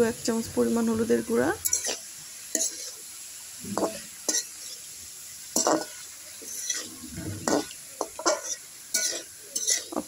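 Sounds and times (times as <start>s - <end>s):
faint sizzle of frying vegetables: 0.0s - 10.0s
metal spatula scraping frying pan: 1.6s - 3.0s, 3.7s - 4.9s, 5.5s - 10.0s.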